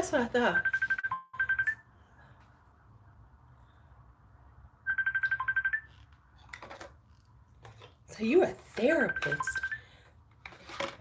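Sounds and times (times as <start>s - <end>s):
rapid high ringtone beeps: 0.5s - 1.8s, 4.9s - 5.9s, 9.1s - 9.8s.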